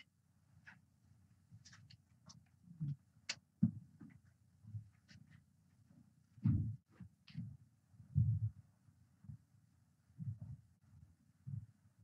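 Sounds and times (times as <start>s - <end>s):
faint low thuds: 6.4s - 8.6s.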